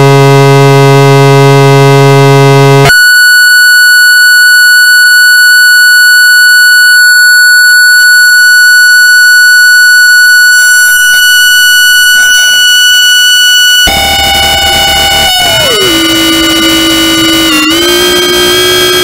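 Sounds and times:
synthesizer drone: 0:10.4 - 0:19.0.

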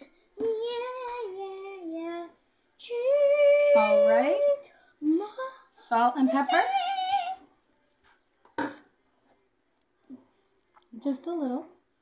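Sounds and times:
child singing: 0:00.4 - 0:05.5.

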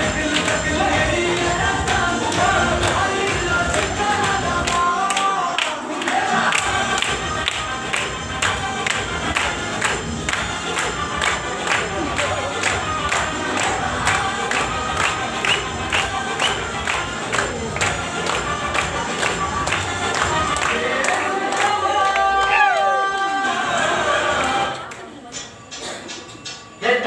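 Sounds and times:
dance music with steady beat: 0:00.0 - 0:22.4
audience cheering and shouting: 0:21.6 - 0:24.2.

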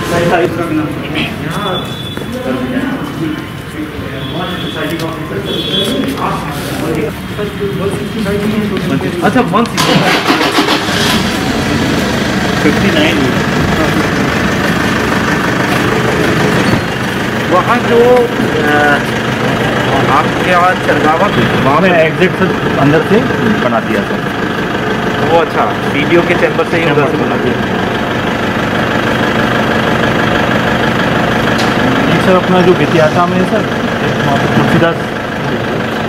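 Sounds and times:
engine idling: 0:00.0 - 0:36.0.

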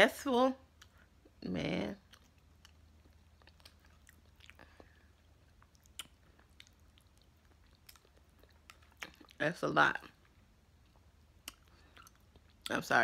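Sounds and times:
close-up chewing: 0:02.0 - 0:12.7
wet mouth clicks: 0:05.5 - 0:09.4, 0:11.4 - 0:12.7.

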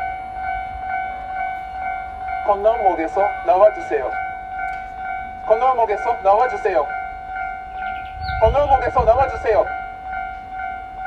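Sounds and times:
level crossing warning bell: 0:00.0 - 0:11.0.

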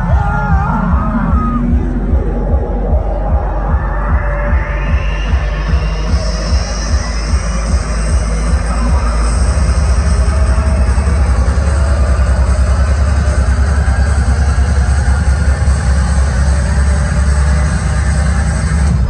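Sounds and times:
electronic dance music: 0:00.0 - 0:19.0
heavy bass line: 0:00.0 - 0:19.0.

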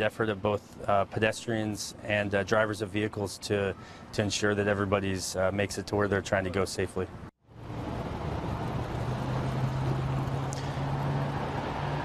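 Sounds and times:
outdoor street noise: 0:00.0 - 0:12.0
vehicle engine idling: 0:07.6 - 0:11.4.

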